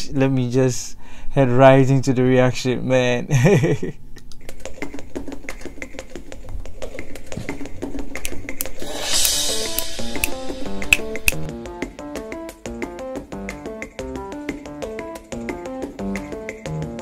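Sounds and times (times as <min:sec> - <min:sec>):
drum kit played fast: 0:07.5 - 0:17.0
crash cymbal: 0:08.8 - 0:11.5
held pitched notes: 0:08.8 - 0:13.5.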